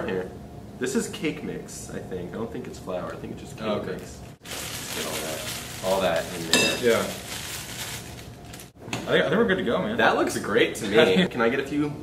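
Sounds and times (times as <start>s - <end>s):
cake mix rustling into bowl: 4.4s - 8.8s.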